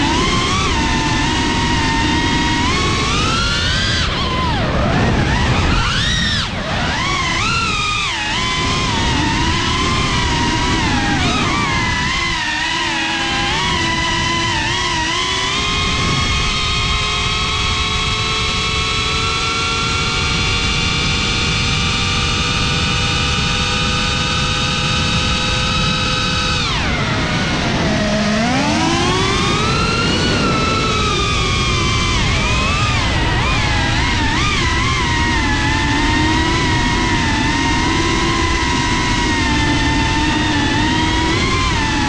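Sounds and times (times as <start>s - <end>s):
quadcopter motors whining: 0.0s - 42.0s.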